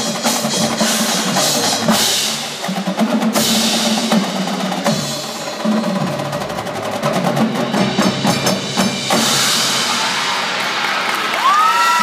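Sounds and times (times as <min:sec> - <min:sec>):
drums and mallet percussion: 0:00.0 - 0:12.0.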